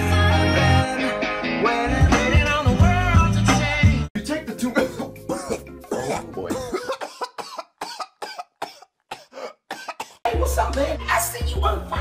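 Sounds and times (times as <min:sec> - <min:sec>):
loud music with heavy bass: 0:00.0 - 0:04.1
man coughing: 0:04.6 - 0:10.2.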